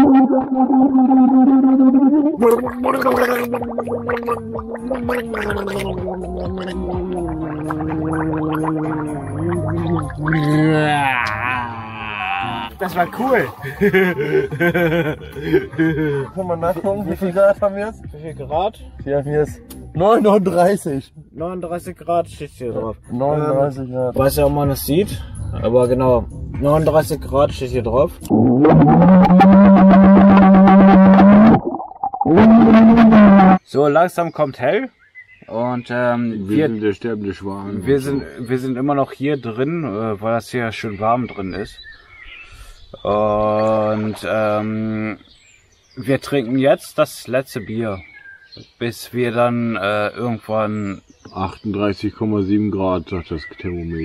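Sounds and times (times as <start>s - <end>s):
man's rough vocal blast: 0.0s - 12.8s, 28.3s - 33.6s
man gargling: 0.0s - 16.4s, 28.2s - 33.6s.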